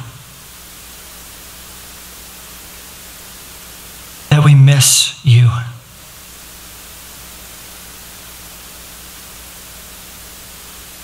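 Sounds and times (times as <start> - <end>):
faint low hum: 0.0 - 2.3
steady hiss: 0.0 - 11.0.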